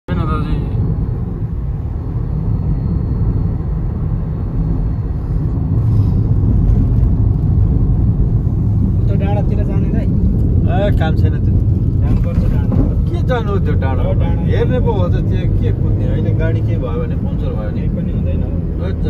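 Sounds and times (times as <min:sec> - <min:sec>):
car engine and tyres rumbling: 0:00.1 - 0:19.0.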